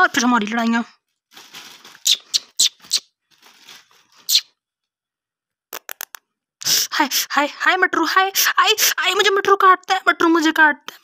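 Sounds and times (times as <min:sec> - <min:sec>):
plastic bag crinkling: 0:01.0 - 0:04.4
quick clicks: 0:05.7 - 0:06.3.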